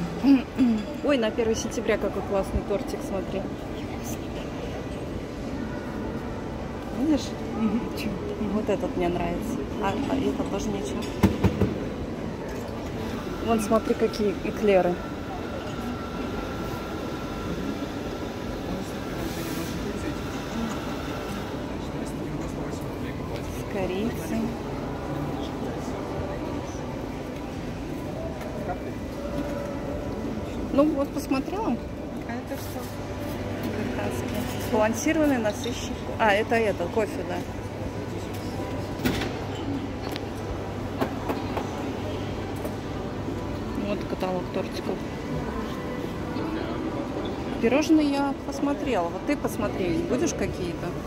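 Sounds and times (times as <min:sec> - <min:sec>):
shopping mall background din: 0:00.0 - 0:51.0.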